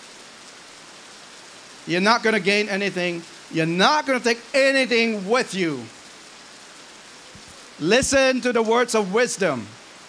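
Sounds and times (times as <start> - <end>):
background hiss: 0.0 - 10.0
man speaking: 1.9 - 5.9, 7.8 - 9.8.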